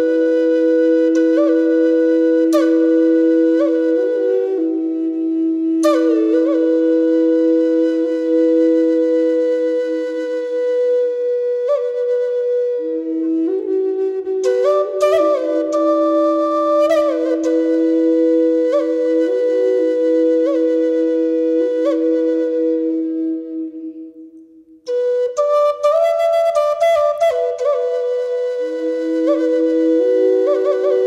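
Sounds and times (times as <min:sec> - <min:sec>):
flute playing slow melody: 0:00.0 - 0:31.0.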